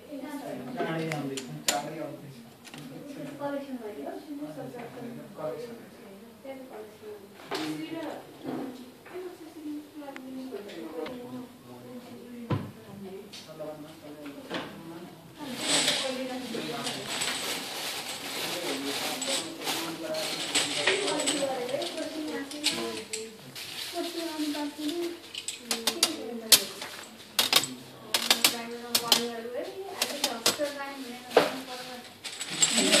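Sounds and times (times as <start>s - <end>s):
person talking: 18.6s - 26.9s.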